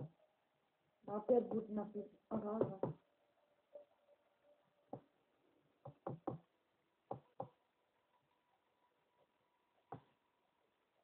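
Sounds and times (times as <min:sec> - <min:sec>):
sharp knocks on a hard surface: 0:05.8 - 0:06.5.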